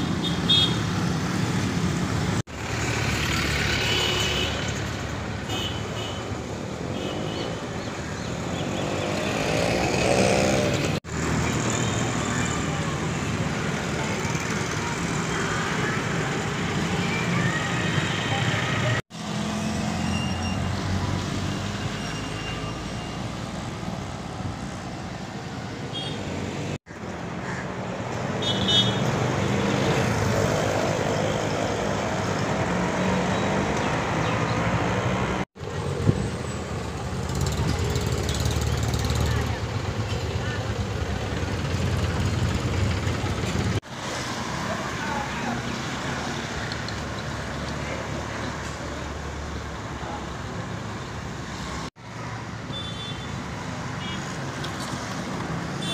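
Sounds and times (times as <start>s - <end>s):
motorcycles and rickshaws passing: 0.0s - 55.9s.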